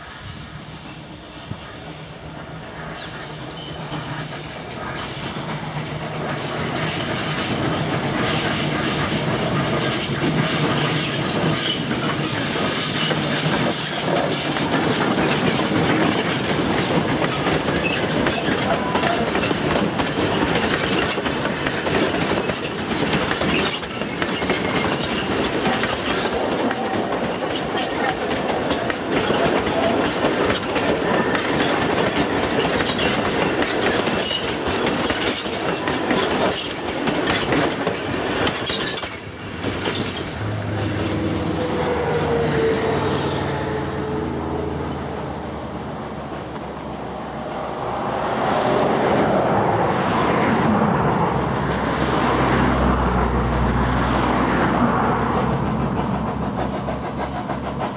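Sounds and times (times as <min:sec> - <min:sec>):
train rolling past: 0:00.0 - 0:57.9
wheels clacking over rail joints: 0:02.5 - 0:42.4, 0:54.0 - 0:57.9.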